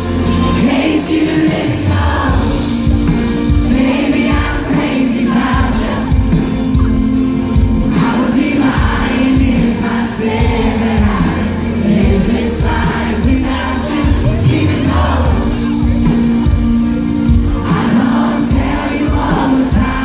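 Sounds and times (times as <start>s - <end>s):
man singing lead vocal: 0.0s - 6.9s, 7.8s - 16.3s, 17.1s - 20.0s
live band playing country pop: 0.0s - 20.0s.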